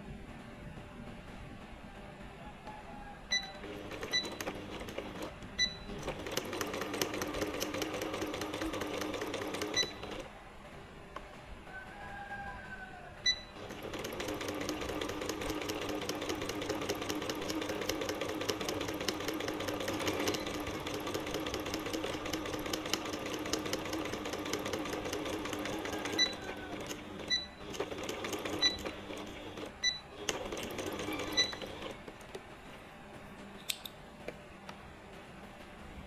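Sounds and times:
sewing machine stitching: 3.3 - 10.3, 13.5 - 32.4.

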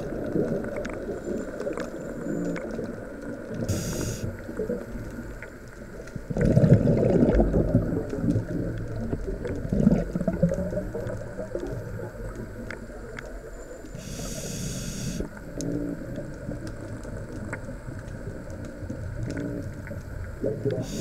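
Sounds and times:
bubbles gurgling underwater: 0.0 - 14.2, 15.2 - 21.0
hissing inhale through regulator: 3.6 - 4.5, 13.9 - 16.0, 20.7 - 21.0.

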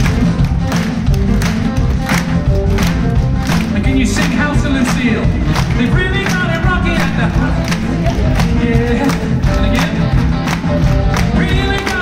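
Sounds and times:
drum kit beat: 0.0 - 12.0
electric guitars: 0.0 - 12.0
keyboard: 0.0 - 12.0.

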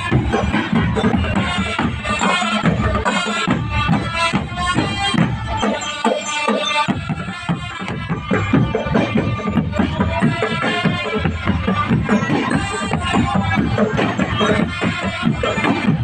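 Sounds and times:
drums beating steady rhythm: 0.0 - 16.0.

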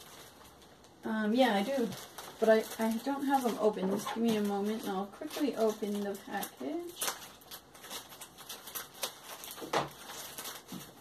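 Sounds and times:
plastic package crinkling: 0.0 - 11.0.

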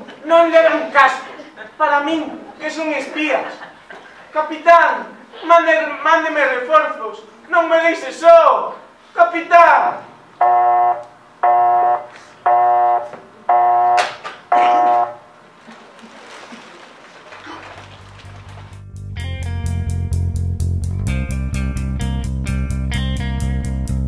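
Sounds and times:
bass line: 18.6 - 24.0
plucked guitar notes: 19.0 - 23.8.

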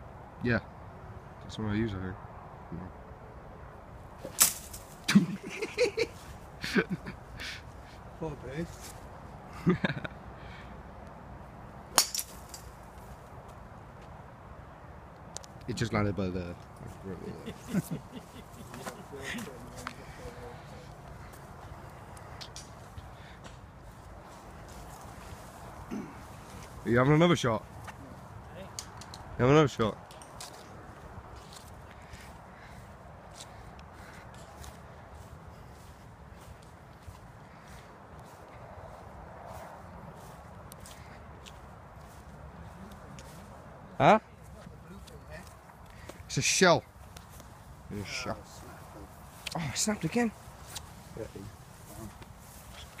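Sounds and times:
footsteps on grass: 4.2 - 9.2, 16.9 - 28.4, 30.4 - 43.7, 46.9 - 53.0
golf club striking ball: 11.9 - 12.7.

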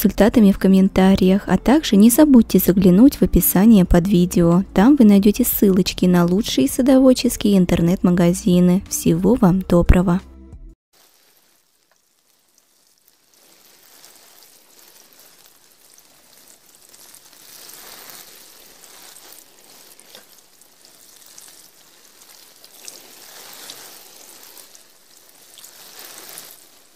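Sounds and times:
rain patter: 10.9 - 26.9
single raindrops: 11.0 - 26.9.

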